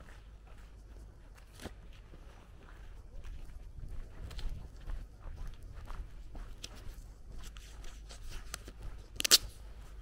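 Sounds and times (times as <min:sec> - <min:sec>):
footsteps on gritty asphalt: 0:00.0 - 0:10.0
steady low rumble: 0:00.0 - 0:10.0.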